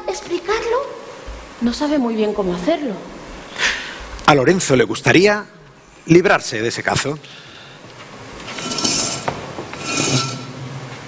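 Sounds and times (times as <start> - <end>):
metal pot scraping on floor: 8.4 - 10.7.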